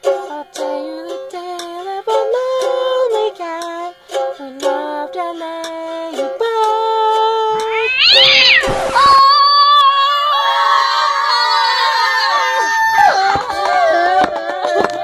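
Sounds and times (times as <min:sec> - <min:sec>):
cat-like yowl: 0:07.6 - 0:11.8.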